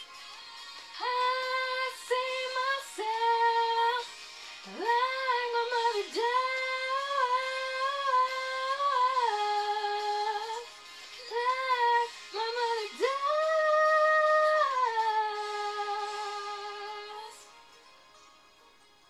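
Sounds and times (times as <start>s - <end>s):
young woman singing: 1.0s - 17.5s.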